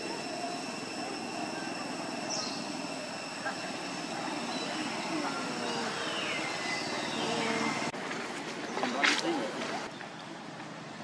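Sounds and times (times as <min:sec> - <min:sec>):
droning background: 0:00.0 - 0:07.9
high falling squeal: 0:00.0 - 0:07.9
macaques calling: 0:03.4 - 0:07.9.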